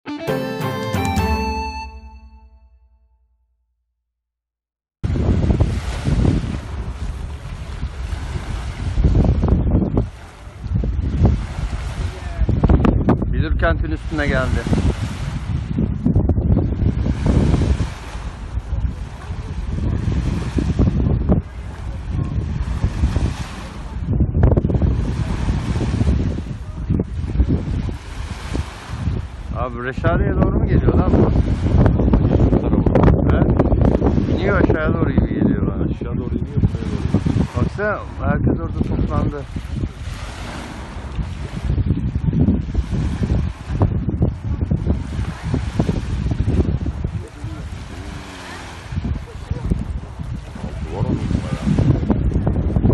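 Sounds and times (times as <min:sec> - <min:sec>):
wind buffeting microphone: 0:05.0 - 0:52.9.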